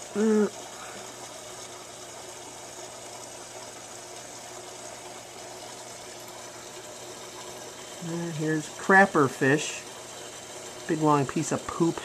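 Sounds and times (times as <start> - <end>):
aquarium pump humming: 0.0 - 12.0
water hissing: 0.0 - 12.0.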